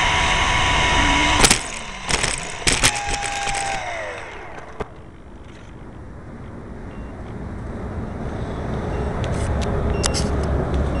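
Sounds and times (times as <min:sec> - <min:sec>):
low rumble: 0:00.0 - 0:08.0.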